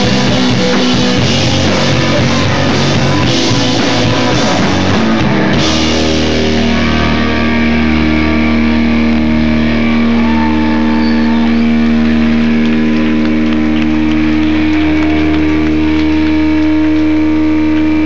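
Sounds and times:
electric guitar drone with feedback: 0.0s - 18.0s.

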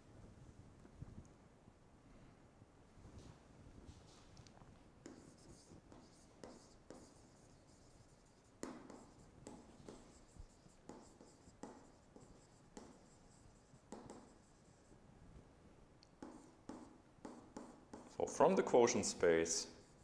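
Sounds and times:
stylus tapping and scratching on screen: 3.2s - 15.0s, 16.0s - 19.0s.

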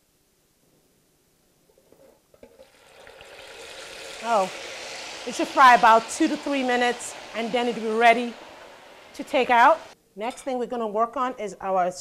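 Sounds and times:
hot oil sizzling in a fryer: 2.4s - 10.0s.

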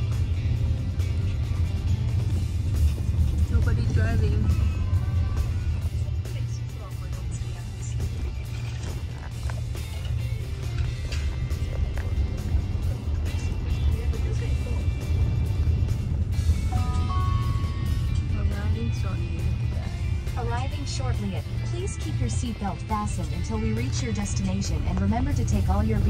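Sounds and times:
music playing: 0.0s - 26.0s
road and tyre rumble in car cabin: 0.0s - 26.0s.

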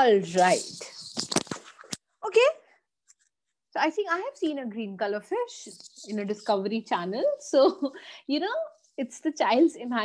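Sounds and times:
woman speaking: 0.0s - 1.0s, 2.2s - 2.7s, 3.7s - 10.0s.

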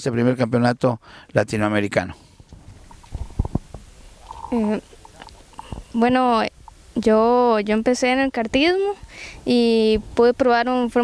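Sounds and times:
microphone handling thumps and rubs: 2.5s - 6.8s.

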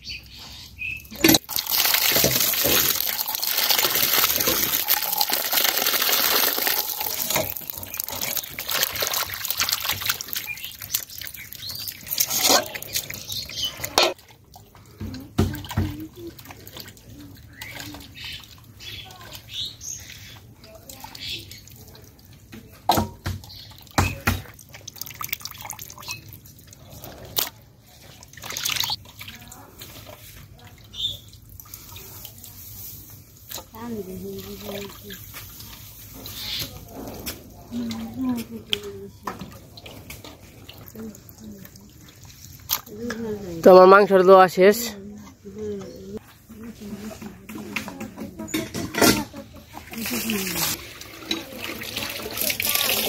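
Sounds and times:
water splashing in bowl: 1.0s - 53.0s.

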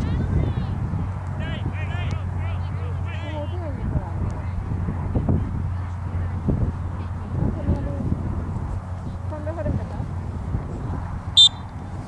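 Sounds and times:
low outdoor rumble: 0.0s - 12.0s
referee's whistle blast: 11.4s - 11.6s.

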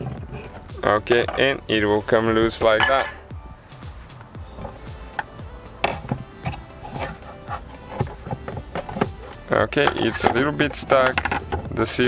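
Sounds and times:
faint background music: 0.0s - 12.0s
plastic clicks and knocks: 11.0s - 11.7s.

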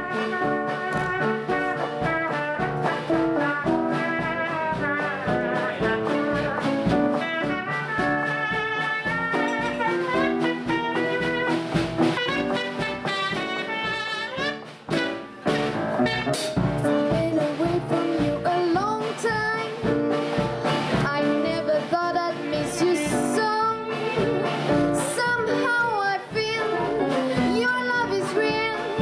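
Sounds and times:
trumpet leading: 0.0s - 18.6s
drum kit swing beat: 0.0s - 29.0s
jazz band playing: 0.0s - 29.0s
piano: 0.0s - 29.0s.

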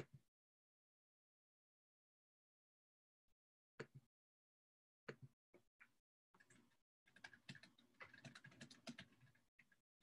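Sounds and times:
computer keyboard typing: 6.4s - 9.8s.

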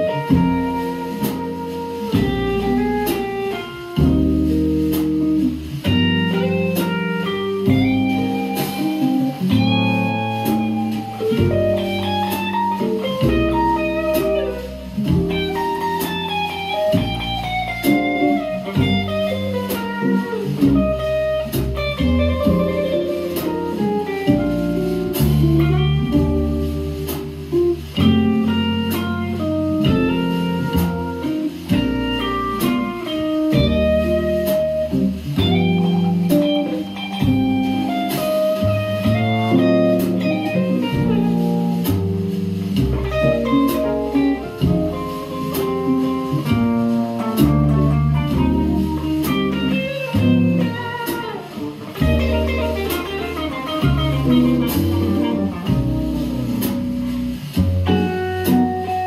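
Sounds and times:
electric guitar playing jazz: 0.0s - 59.0s.

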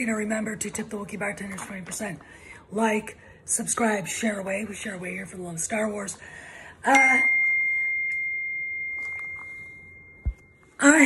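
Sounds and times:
high ding: 6.9s - 11.0s.

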